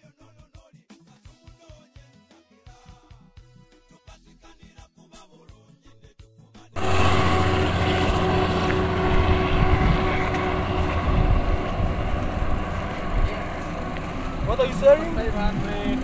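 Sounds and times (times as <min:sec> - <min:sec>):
car engine idling: 0:06.8 - 0:16.0
faint music: 0:06.8 - 0:16.0
low hum: 0:06.8 - 0:16.0
wind buffeting microphone: 0:06.8 - 0:16.0.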